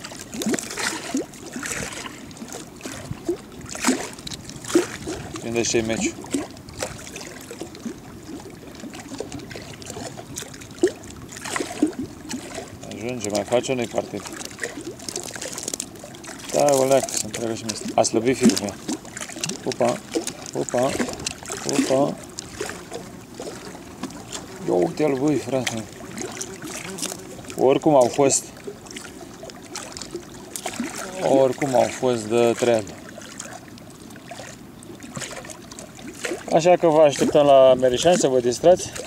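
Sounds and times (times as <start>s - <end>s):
steady wind: 0.0s - 39.0s
waves lapping against boat hull: 0.0s - 39.0s.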